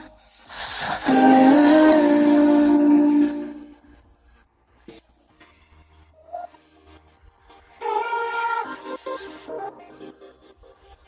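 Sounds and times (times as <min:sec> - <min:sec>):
man singing a cappella: 0:00.6 - 0:03.8.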